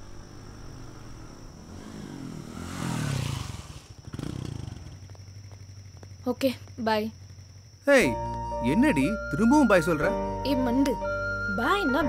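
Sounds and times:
motorcycle engine running: 0.0 - 10.8.

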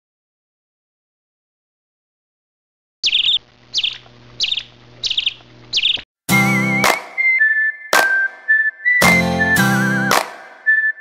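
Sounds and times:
bird chirping: 3.0 - 9.2.

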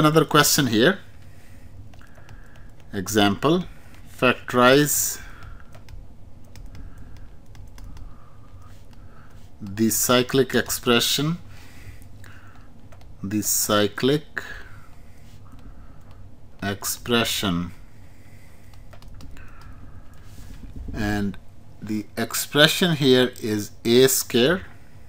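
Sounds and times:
low background hum: 0.0 - 25.0.

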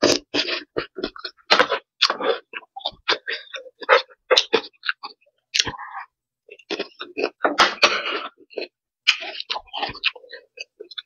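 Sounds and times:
wet chewing sounds: 0.0 - 11.0.

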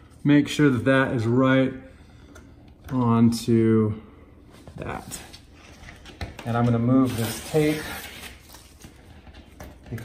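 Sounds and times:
tape being peeled off: 6.0 - 9.1.

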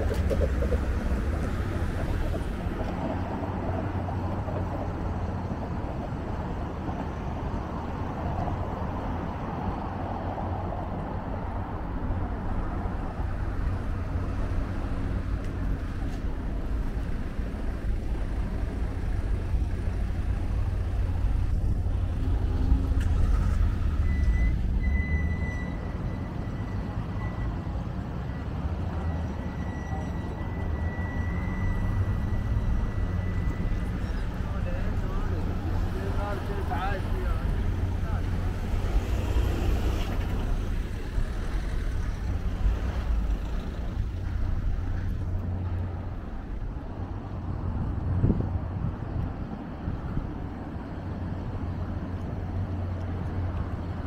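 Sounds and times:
traffic rumble: 0.0 - 54.0.

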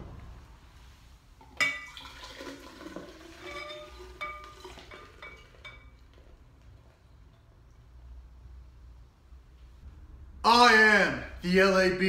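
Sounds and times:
beer glugging into a glass: 1.4 - 6.3
glass bottles clinking: 1.4 - 6.4.

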